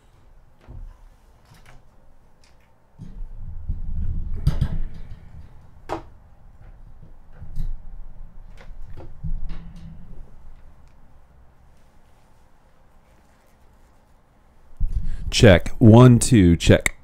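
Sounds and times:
microphone handling noise: 14.8s - 15.3s.

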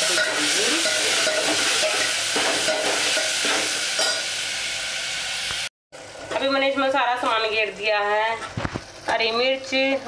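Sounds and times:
vegetables sizzling in a pot: 0.0s - 10.0s.

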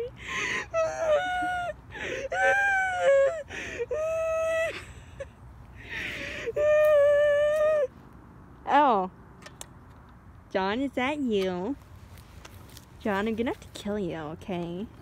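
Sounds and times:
child gasping breaths: 5.8s - 6.6s.

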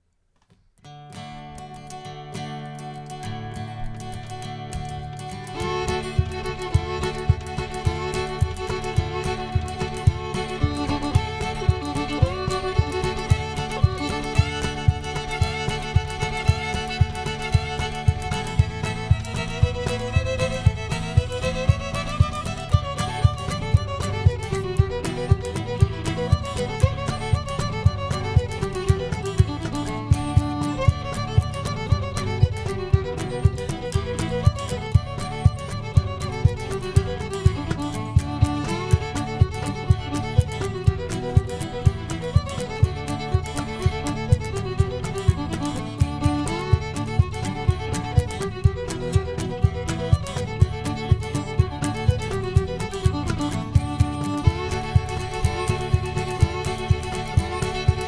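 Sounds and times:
strummed acoustic guitar: 0.8s - 58.0s
fiddle melody: 1.2s - 58.0s
cajon beat: 2.7s - 58.0s.

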